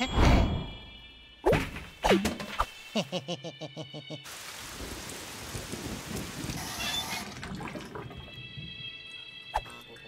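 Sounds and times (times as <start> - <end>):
water rushing: 4.3 - 8.0.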